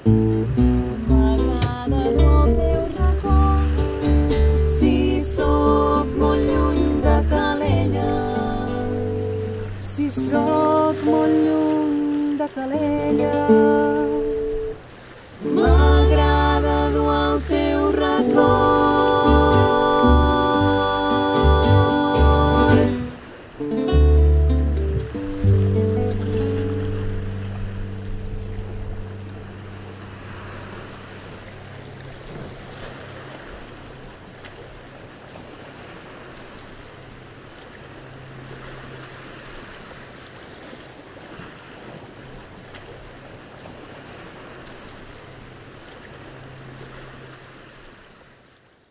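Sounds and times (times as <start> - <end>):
guitar and double bass chord: 0.0 - 11.6, 12.9 - 14.8, 15.4 - 31.2
low steady hum: 0.0 - 33.0
sea waves washing against rocks: 0.0 - 48.2.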